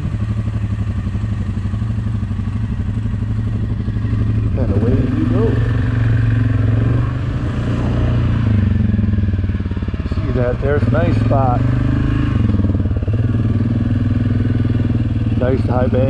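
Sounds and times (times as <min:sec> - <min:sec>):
quad bike engine revving: 0:00.0 - 0:16.0.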